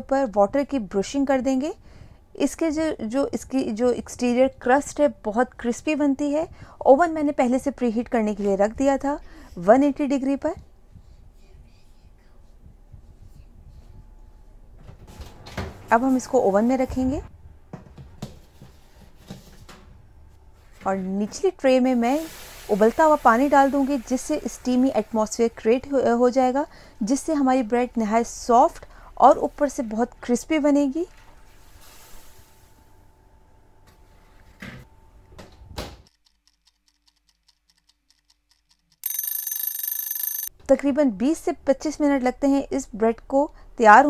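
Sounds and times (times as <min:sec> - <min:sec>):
boiling water poured with hiss: 0:22.0 - 0:24.4, 0:31.5 - 0:32.7
alarm clock bell ringing: 0:39.0 - 0:40.5.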